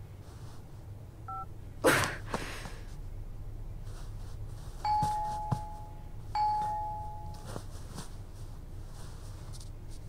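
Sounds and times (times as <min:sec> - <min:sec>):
two-tone doorbell chime: 0:04.9 - 0:07.5.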